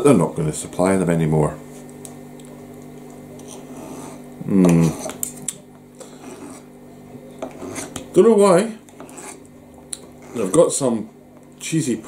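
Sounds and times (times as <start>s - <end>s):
fork scraping a dish: 3.4s - 5.2s, 6.0s - 6.7s, 7.4s - 8.1s, 8.9s - 10.6s.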